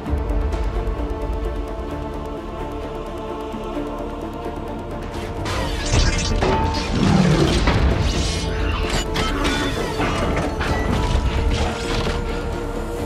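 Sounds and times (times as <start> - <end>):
dramatic film score: 0.0 - 13.0.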